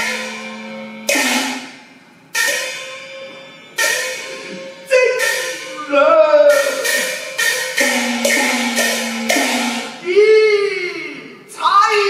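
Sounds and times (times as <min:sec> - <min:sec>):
cymbal crashes: 0:00.0 - 0:05.9, 0:06.5 - 0:10.0.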